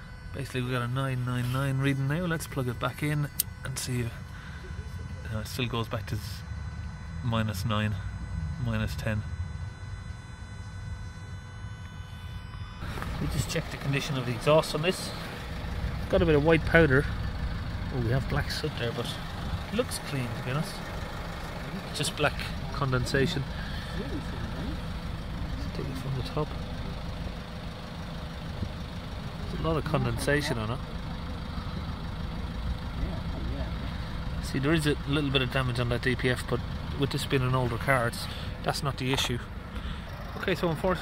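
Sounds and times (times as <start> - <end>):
diesel engine idling: 0.0 - 41.0.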